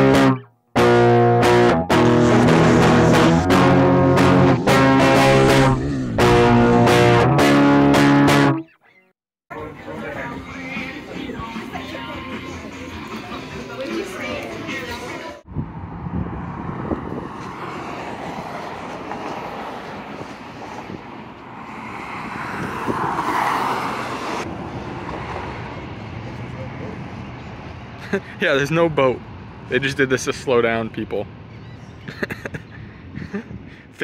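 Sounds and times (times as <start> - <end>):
guitar background music: 0.0 - 9.0, 9.6 - 15.2
open-air ambience rush: 9.5 - 34.0.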